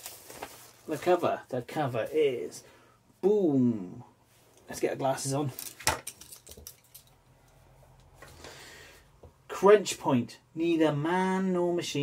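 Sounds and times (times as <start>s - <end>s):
soft handling rustle: 0.0s - 2.7s.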